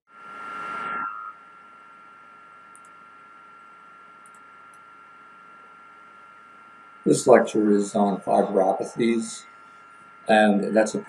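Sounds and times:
electronic hiss: 0.1 - 2.0, 6.7 - 11.0
high-pitched whine: 0.1 - 11.0
rush of noise: 0.2 - 1.4.

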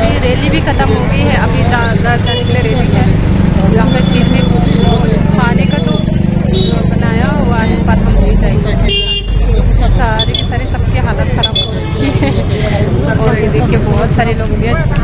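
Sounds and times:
crowd chatter: 0.0 - 15.0
vehicles running: 0.0 - 15.0
car horn toot: 2.2 - 2.7, 5.7 - 6.9, 8.8 - 9.5, 10.2 - 10.5, 11.4 - 12.4.

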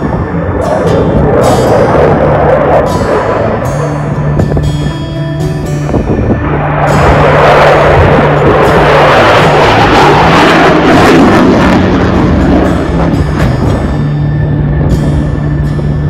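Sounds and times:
jet fighter passing: 0.0 - 5.0, 6.3 - 15.6
background music with bass line: 0.0 - 16.0.

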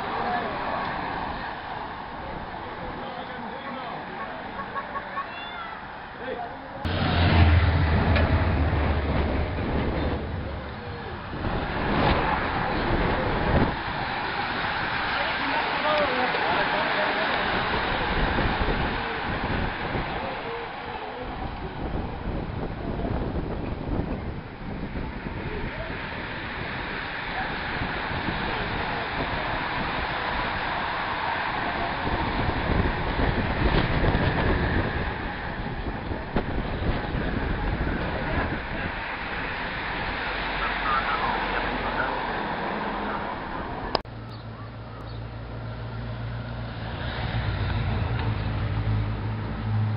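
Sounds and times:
people's voices: 0.0 - 46.1
bicycles rushing past: 0.0 - 49.9
wind buffeting microphone: 6.8 - 44.1.

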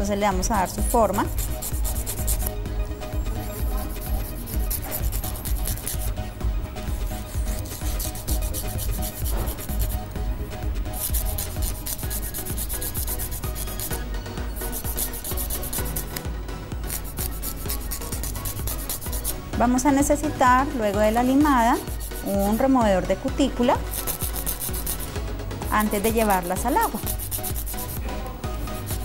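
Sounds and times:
nail file rasping on fingernails: 0.6 - 2.6, 3.4 - 6.2, 6.8 - 10.1, 10.9 - 16.2, 16.8 - 19.5, 21.1 - 22.8, 23.8 - 28.0, 28.7 - 29.0.

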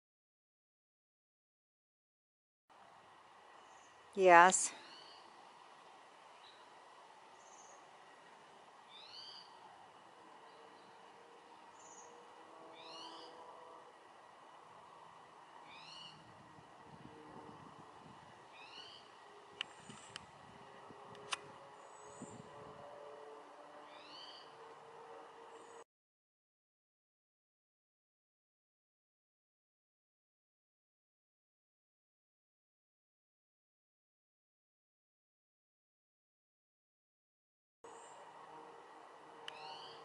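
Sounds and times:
songbird singing: 3.5 - 13.6, 15.5 - 16.4, 18.4 - 20.1, 21.7 - 22.6, 23.8 - 24.7, 39.4 - 40.0.

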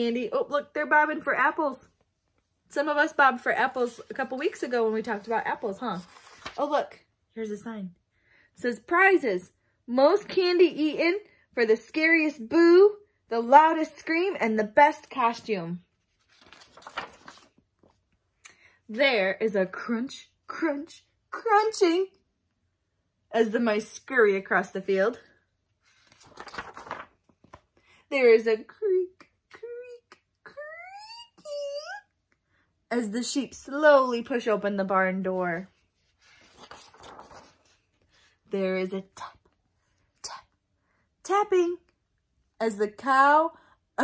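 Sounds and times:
paper page being turned: 3.7 - 7.0, 15.9 - 18.0, 25.8 - 27.7, 35.3 - 38.4.

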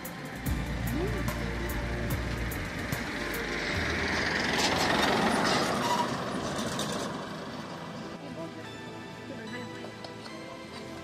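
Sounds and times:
pickup truck passing by: 0.0 - 8.2.

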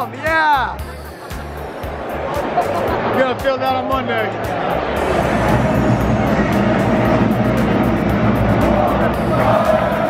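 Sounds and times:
music with quick regular beat: 0.0 - 10.0
stadium crowd din: 0.0 - 10.0.

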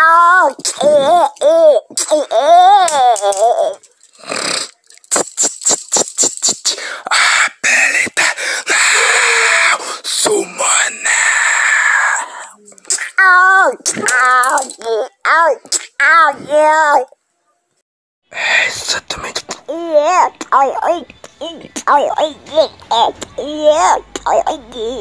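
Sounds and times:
vocal clicks: 2.9 - 6.8
vocal hissing: 4.2 - 13.2
voice wailing: 8.7 - 12.6.

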